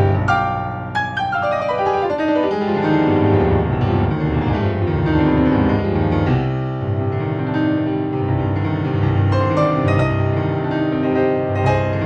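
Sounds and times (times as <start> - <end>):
grand piano chords: 0.0 - 12.0.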